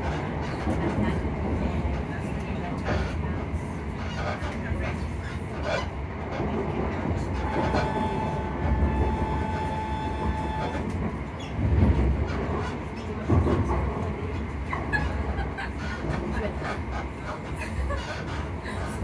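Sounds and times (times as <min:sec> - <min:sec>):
train carriage rumbling on rails: 0:00.0 - 0:19.0
thumps of train carriage: 0:06.4 - 0:15.4.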